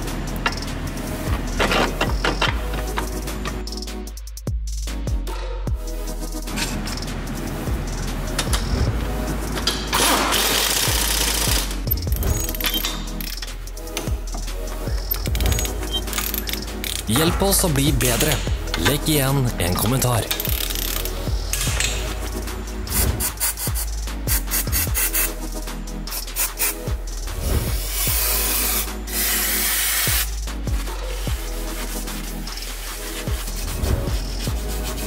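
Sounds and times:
background music: 0.0 - 35.0
pneumatic impact wrench: 9.9 - 11.8, 27.9 - 30.3
aerosol can spraying hisses: 27.9 - 30.3.

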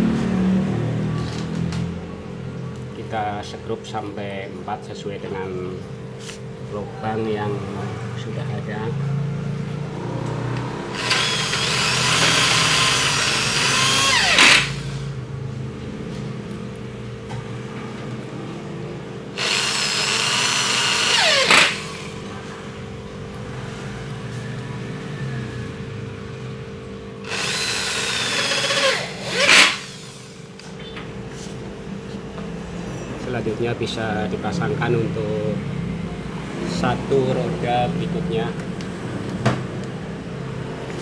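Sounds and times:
electric drill driving screws into metal: 10.9 - 15.0, 19.4 - 22.1, 27.2 - 30.4.

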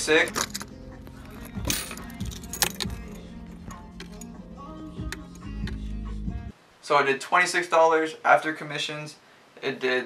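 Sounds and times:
coins and metal parts rattling: 0.1 - 4.3.

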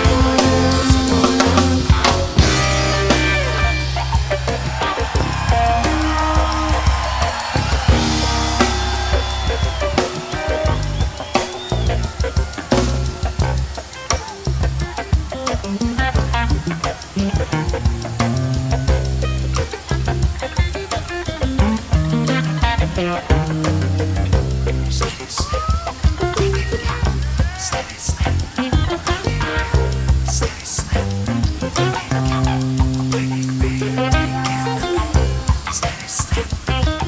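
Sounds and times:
bass line: 0.0 - 37.0
drum kit steady beat: 0.0 - 37.0
electric guitar lead lines: 0.0 - 37.0.

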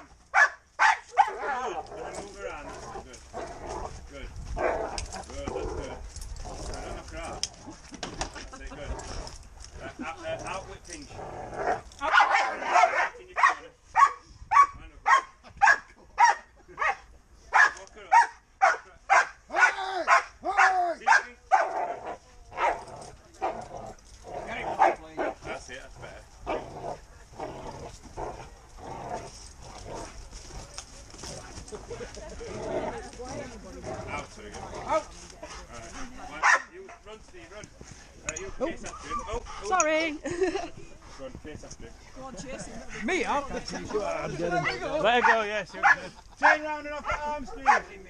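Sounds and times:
dog barking: 0.3 - 1.6, 12.1 - 22.8, 36.4 - 36.7, 44.6 - 47.9.

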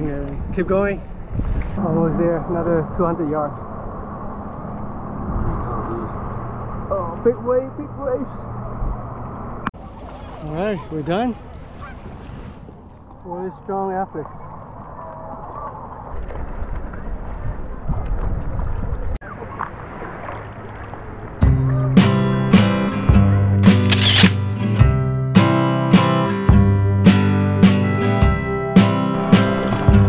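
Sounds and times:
wind buffeting microphone: 0.0 - 7.2, 14.7 - 19.2
water noise: 0.0 - 24.8, 26.0 - 30.0
wind: 0.0 - 30.0
lake water lapping: 9.7 - 22.3.

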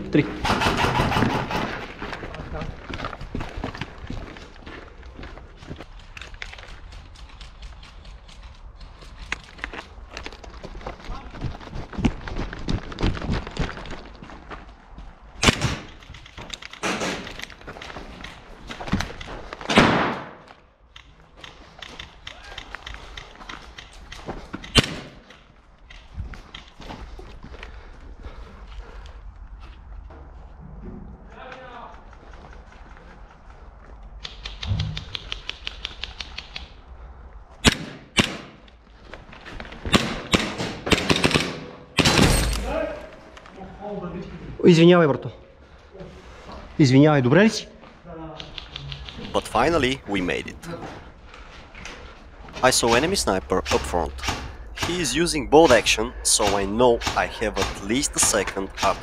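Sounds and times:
people shouting: 22.3 - 22.7.

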